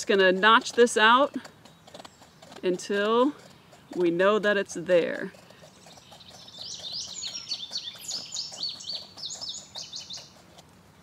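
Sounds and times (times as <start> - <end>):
file rasping on shell: 0.0 - 10.7
songbird singing: 0.0 - 11.0.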